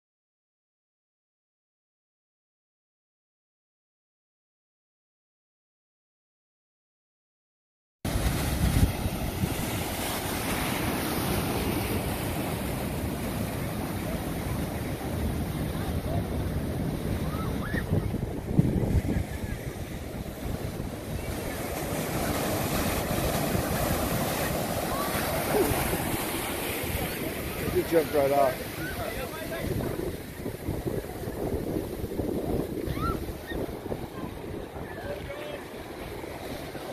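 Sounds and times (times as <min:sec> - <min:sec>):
wind noise on microphone: 0:08.1 - 0:10.0, 0:15.3 - 0:24.7, 0:29.2 - 0:36.4
waves breaking: 0:08.1 - 0:36.9.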